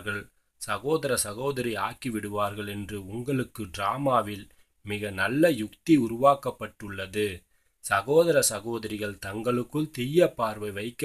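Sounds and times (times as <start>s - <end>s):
person reading aloud: 0.0s - 11.0s.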